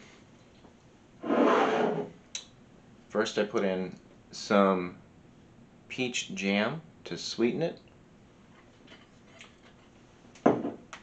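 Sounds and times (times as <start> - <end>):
container scraping on countertop: 1.2 - 2.2.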